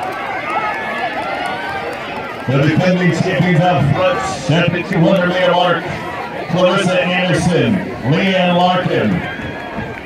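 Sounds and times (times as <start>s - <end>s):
crowd cheering and yelling: 0.0s - 10.0s.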